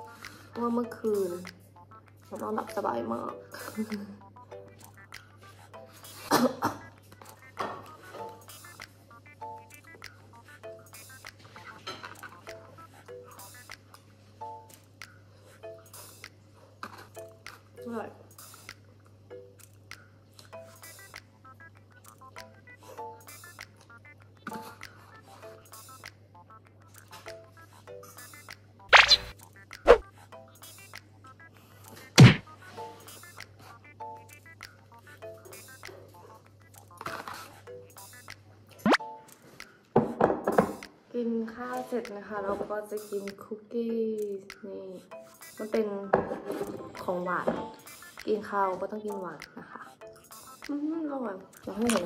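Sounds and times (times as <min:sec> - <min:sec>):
sharp clicky accents: 0:28.1 - 0:31.2.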